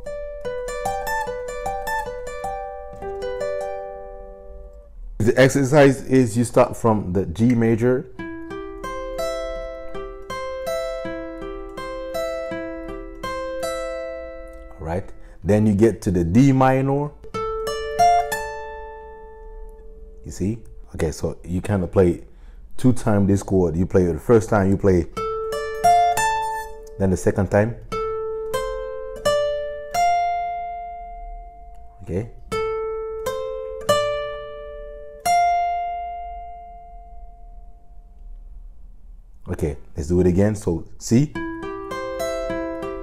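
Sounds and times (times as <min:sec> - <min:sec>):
acoustic guitar arpeggio: 0:00.0 - 0:22.6, 0:23.4 - 0:38.2, 0:41.3 - 0:43.0.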